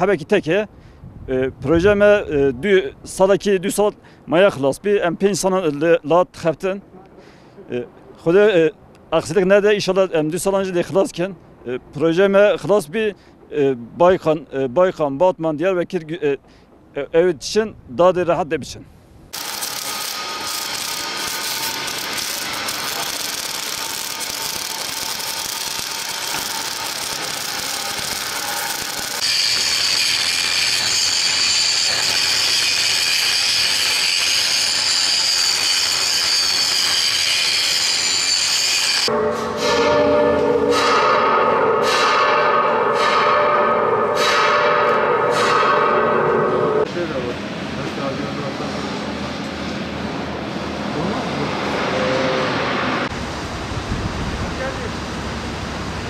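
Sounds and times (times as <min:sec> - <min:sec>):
angle grinder cutting steel: 0:19.4 - 0:41.1
noisy metalwork: 0:19.4 - 0:47.7.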